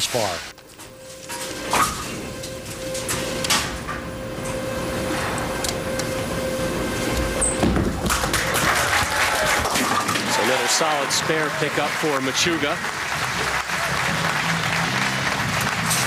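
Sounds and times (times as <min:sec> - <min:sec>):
bowling pins clattering: 0:07.4 - 0:10.6
crowd applause and cheering: 0:07.7 - 0:16.0.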